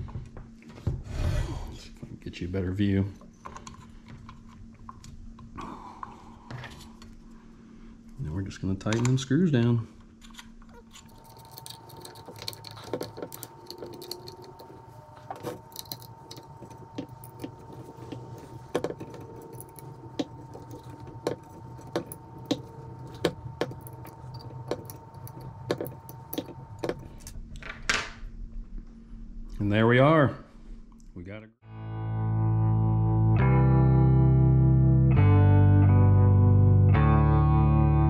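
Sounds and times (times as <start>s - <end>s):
faint steady hum: 0.0s - 31.5s
hex key clicking in screws: 10.9s - 27.3s.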